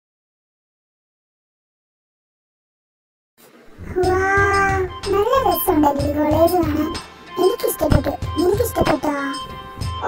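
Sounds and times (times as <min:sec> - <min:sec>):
background music: 0:03.7 - 0:10.0.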